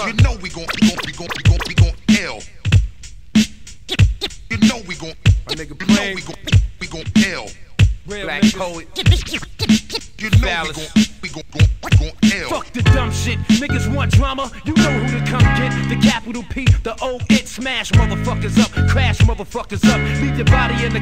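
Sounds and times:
person rapping: 0:00.0 - 0:02.7, 0:03.9 - 0:21.0
looped sample with vocal snippets: 0:00.0 - 0:02.8, 0:03.9 - 0:21.0
hip hop drum loop: 0:00.0 - 0:21.0.

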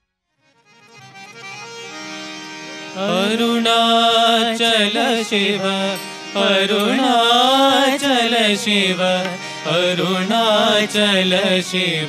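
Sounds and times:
harmonium playing held notes: 0:00.3 - 0:12.0.

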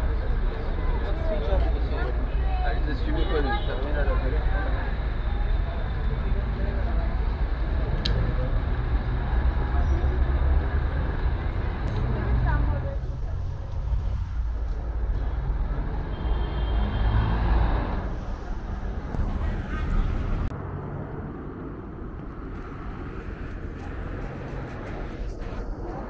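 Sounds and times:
passers-by talking: 0:00.0 - 0:16.0, 0:17.8 - 0:20.5, 0:22.6 - 0:26.0
traffic rumble: 0:00.0 - 0:26.0.

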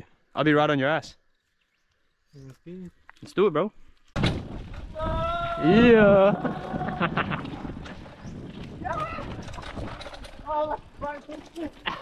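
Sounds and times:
bike rattling over rough ground: 0:03.2 - 0:12.0
bike tyre and wind noise: 0:03.2 - 0:12.0.

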